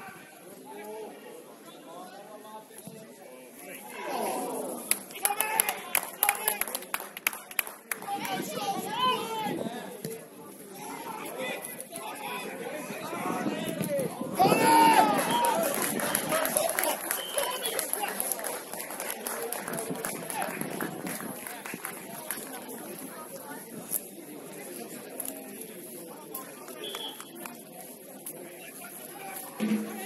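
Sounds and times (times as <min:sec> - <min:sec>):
people shouting outdoors: 0:14.4 - 0:15.6.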